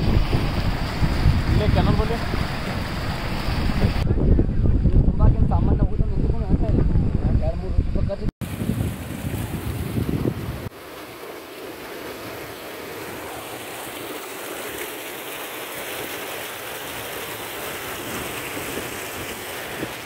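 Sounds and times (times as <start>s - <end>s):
floodwater rushing: 0.0s - 4.0s, 8.4s - 20.0s
wind buffeting microphone: 0.0s - 10.7s.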